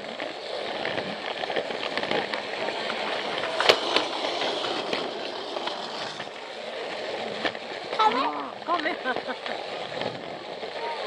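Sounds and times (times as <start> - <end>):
toy train rolling rattle: 0.0 - 11.0.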